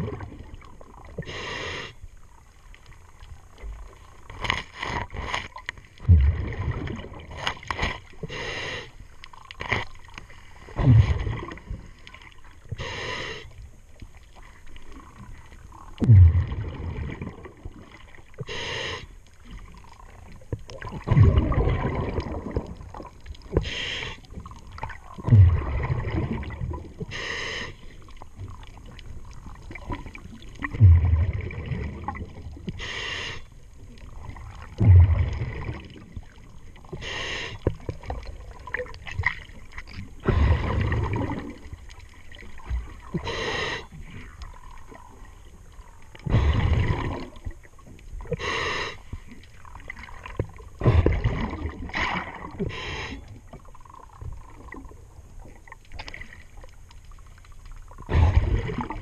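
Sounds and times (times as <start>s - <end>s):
exhaled bubbles rumbling: 0.0s - 1.4s, 5.0s - 8.4s, 9.3s - 12.9s, 13.5s - 18.5s, 19.4s - 32.8s, 33.5s - 59.0s
regulator hissing inhale: 1.2s - 2.1s, 8.2s - 9.1s, 12.7s - 13.6s, 18.4s - 19.2s, 23.6s - 24.3s, 27.0s - 28.0s, 32.7s - 33.5s, 36.9s - 37.7s, 43.1s - 44.2s, 48.3s - 49.2s, 52.6s - 53.3s.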